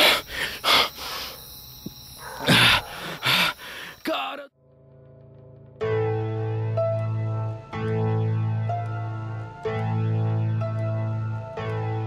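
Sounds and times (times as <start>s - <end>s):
dogs barking: 2.2s - 3.4s.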